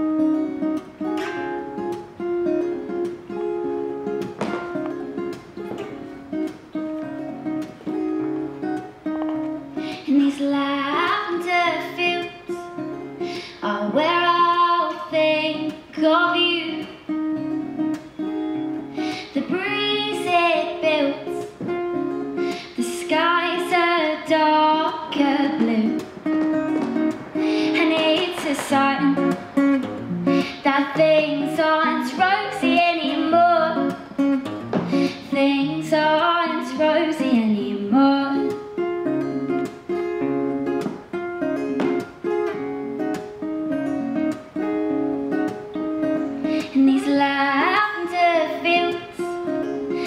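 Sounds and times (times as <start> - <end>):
acoustic guitar playing: 0.0 - 50.0
woman singing folk-country song: 8.4 - 39.4, 46.0 - 50.0.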